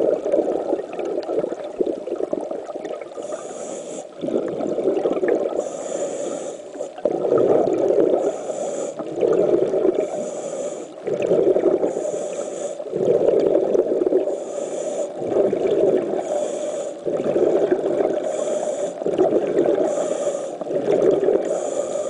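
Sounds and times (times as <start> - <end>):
exhaled bubbles underwater: 0.0 - 22.0
regulator hissing inhalation: 3.2 - 4.2, 5.6 - 7.0, 8.2 - 9.0, 10.0 - 11.0, 11.8 - 13.0, 14.2 - 15.2, 16.1 - 17.1, 18.2 - 19.2, 19.8 - 22.0.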